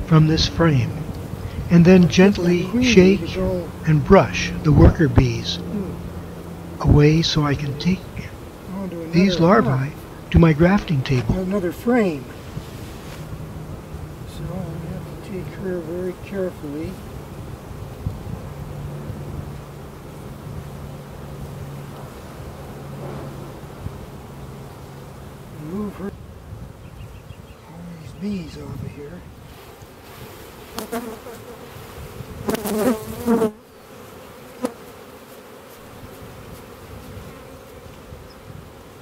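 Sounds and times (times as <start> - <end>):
wind rumble on microphone: 0.0 - 8.4, 12.2 - 30.3, 31.7 - 33.3, 35.8 - 39.0
honeybees humming: 0.0 - 39.0.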